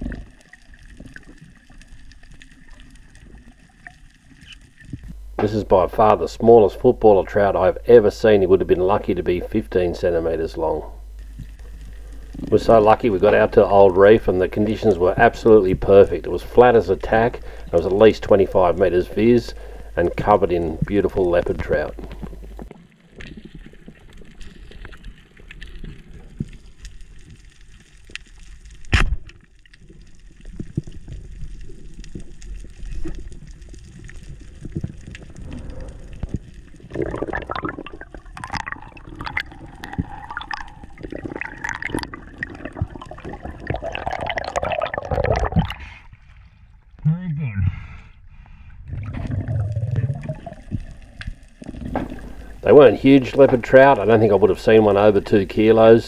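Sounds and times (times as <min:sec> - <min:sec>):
muffled underwater water noise: 0:00.0 - 0:47.0, 0:47.8 - 0:56.0
murky voice-like sounds: 0:47.0 - 0:48.1.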